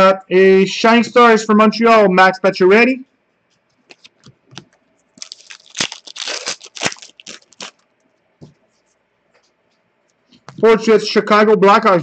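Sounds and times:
cards and wrapper rustling: 0:03.9 - 0:07.8.

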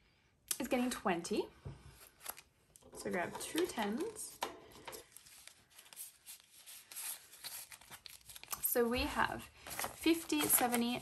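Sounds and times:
banknotes crinkling and rustling: 0:01.8 - 0:11.0.

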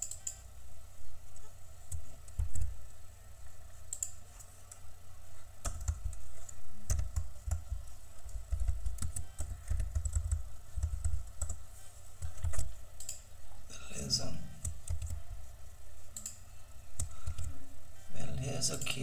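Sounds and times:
typing on computer keyboard: 0:05.6 - 0:11.6, 0:14.6 - 0:15.2.

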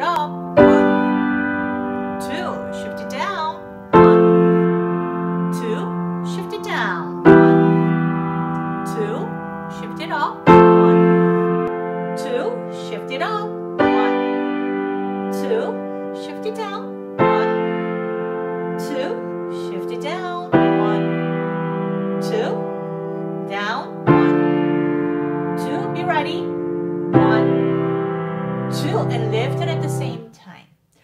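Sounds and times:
piano block chords: 0:00.0 - 0:30.2.

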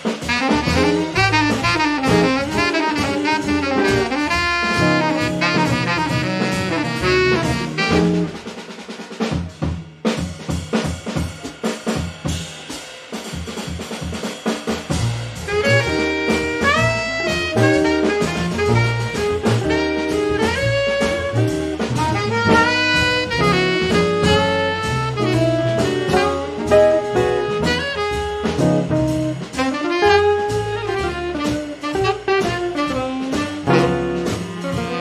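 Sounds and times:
bass: 0:00.0 - 0:35.0
drum kit playing: 0:00.0 - 0:35.0
saxophone melody: 0:00.3 - 0:08.4, 0:15.5 - 0:35.0
guitar: 0:00.4 - 0:08.4, 0:15.5 - 0:35.0.

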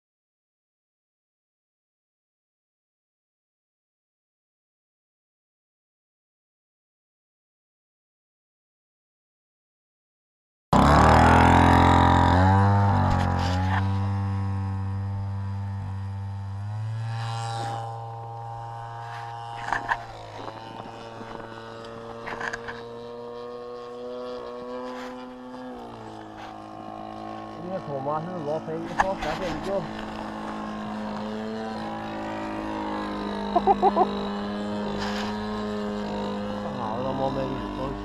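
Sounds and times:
model plane engine at high throttle: 0:10.8 - 0:38.0.

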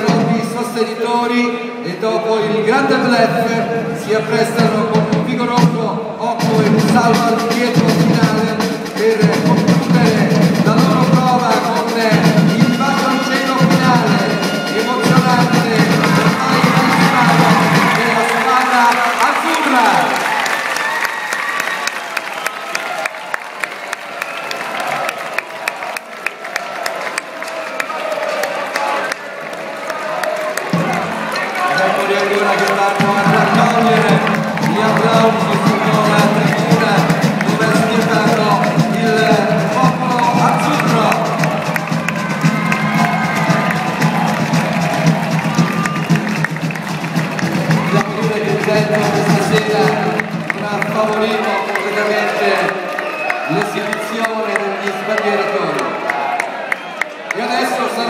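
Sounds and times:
rapid dense drumming: 0:00.0 - 0:00.8, 0:04.2 - 0:20.2, 0:30.6 - 0:52.4
crowd chatter and cheering: 0:00.0 - 0:58.0.

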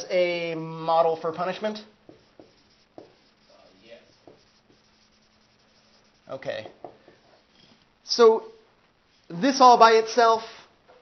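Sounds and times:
marker strokes on whiteboard: 0:01.4 - 0:07.8.

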